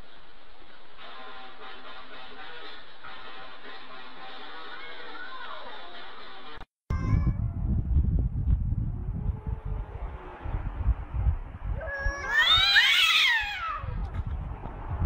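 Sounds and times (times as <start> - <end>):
low rumbling noise: 6.9 - 15.0
cats yowling: 11.8 - 14.0.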